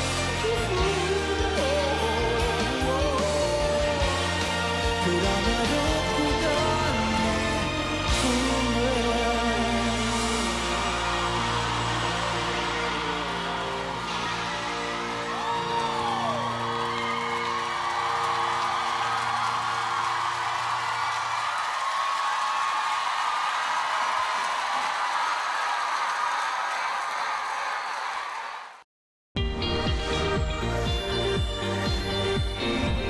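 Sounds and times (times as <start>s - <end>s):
crowd cheering and clapping: 0.0s - 28.8s.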